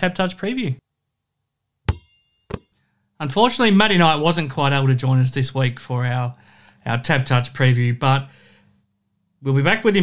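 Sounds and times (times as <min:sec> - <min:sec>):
faint high ringing: 0:01.9 - 0:02.7
sharp knocks: 0:01.9 - 0:02.7.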